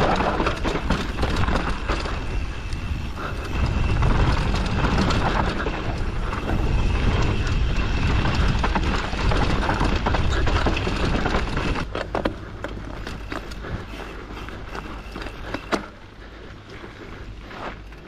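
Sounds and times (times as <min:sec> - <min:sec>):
wind buffeting microphone: 0:00.0 - 0:12.0
bike chain rattling: 0:00.0 - 0:18.0.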